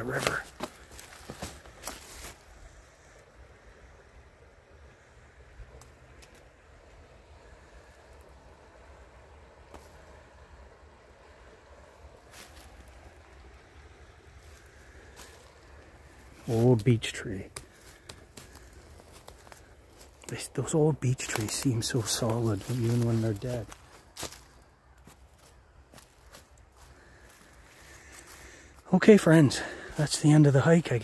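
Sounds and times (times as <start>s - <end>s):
river flowing: 0.0s - 31.0s.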